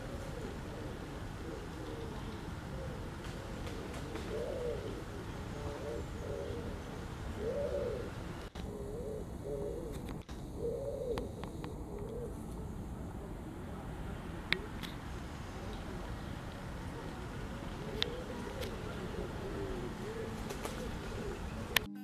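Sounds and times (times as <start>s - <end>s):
pigeon cooing: 0.0s - 13.8s, 16.8s - 22.0s.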